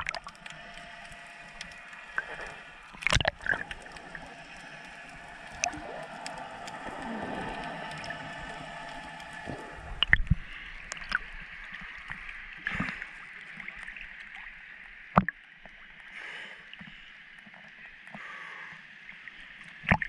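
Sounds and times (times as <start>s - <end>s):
water sloshing splashes: 0.0s - 11.8s
faint underwater clicks: 0.0s - 15.9s
underwater hiss: 0.1s - 13.8s.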